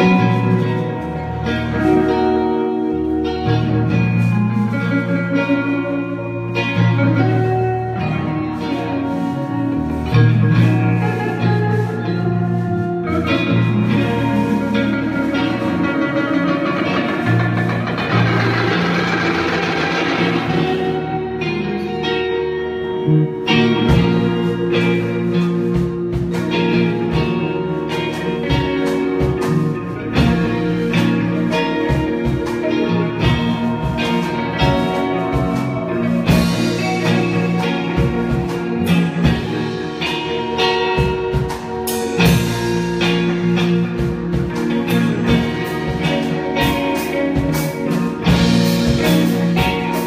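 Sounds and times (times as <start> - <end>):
live rock band instrumental: 0.0 - 50.0.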